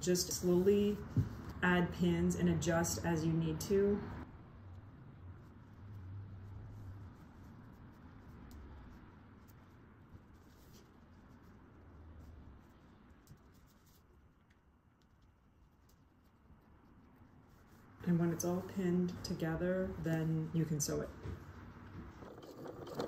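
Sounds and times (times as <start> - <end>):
canvas fabric rustling: 5.4 - 23.0.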